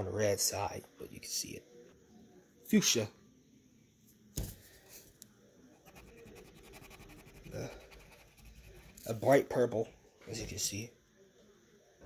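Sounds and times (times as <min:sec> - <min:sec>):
crayon scribbling on paper: 0:05.8 - 0:09.2.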